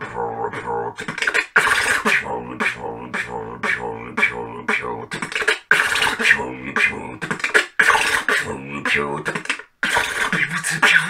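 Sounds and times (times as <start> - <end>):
man beatboxing: 0.0 - 11.0.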